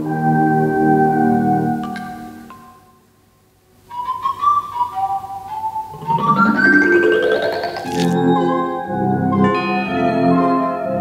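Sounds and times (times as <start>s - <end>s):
high wavering whistled melody: 3.9s - 7.7s.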